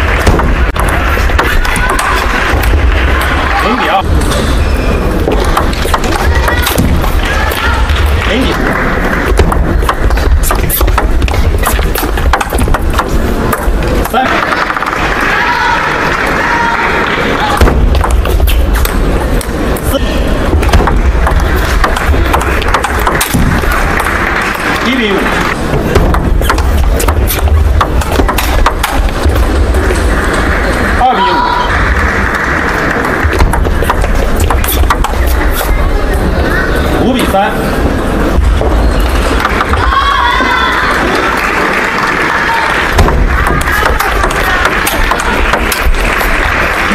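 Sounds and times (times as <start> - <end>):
hall background noise: 0.0 - 46.9
voices in a hall: 0.0 - 46.9.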